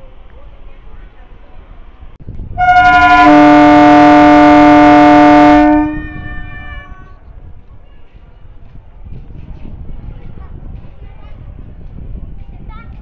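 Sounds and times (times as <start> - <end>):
low rumble of train: 0.0 - 13.0
train air horn blast: 2.6 - 7.0.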